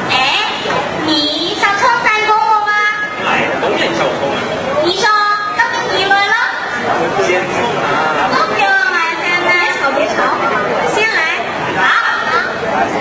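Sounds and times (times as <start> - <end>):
people talking into microphones: 0.0 - 13.0.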